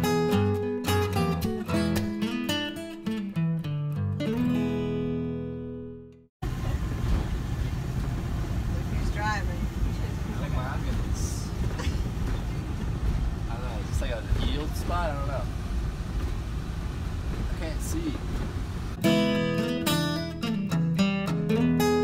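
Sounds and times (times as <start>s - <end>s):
road and engine rumble: 6.4s - 19.2s.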